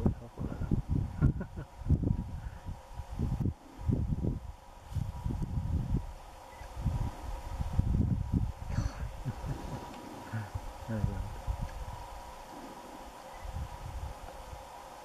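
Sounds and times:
wind buffeting microphone: 0.0 - 14.8
faint steady hum: 0.0 - 15.0.

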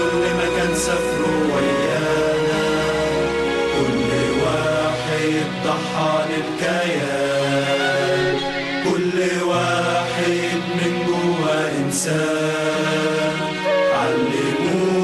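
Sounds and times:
sustained accompaniment: 0.0 - 9.0, 9.6 - 15.0
chant-like singing: 0.0 - 15.0.

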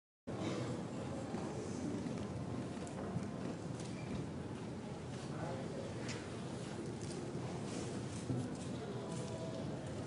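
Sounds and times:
crowd murmur: 0.3 - 10.0.

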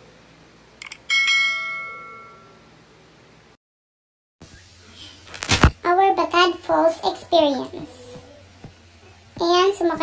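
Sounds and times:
cursor click: 0.8 - 1.0
notification bell ding: 1.1 - 2.6.

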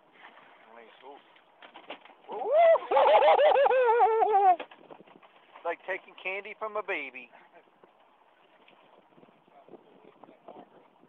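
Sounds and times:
person laughing high-pitched: 2.5 - 4.6.

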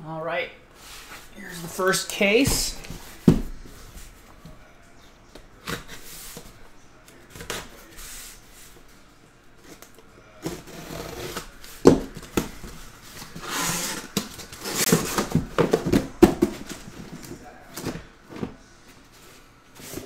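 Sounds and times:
cardboard knocks and rustling: 2.4 - 3.8, 14.1 - 18.6
cardboard flaps scraping: 10.4 - 17.9.

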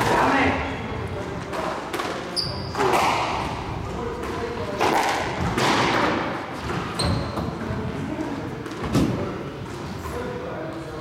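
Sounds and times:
shoe squeak on court floor: 2.3 - 2.9, 6.9 - 7.6.

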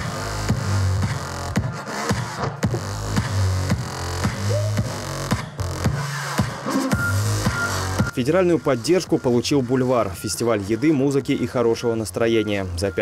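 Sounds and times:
electronic dance music: 0.0 - 13.0.

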